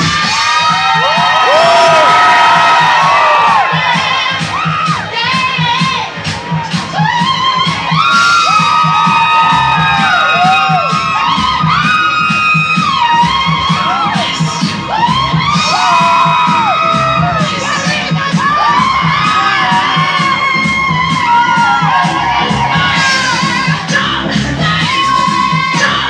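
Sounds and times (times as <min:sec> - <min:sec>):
crowd screaming and cheering: 0:00.0 - 0:26.0
loud dance music: 0:00.0 - 0:26.0.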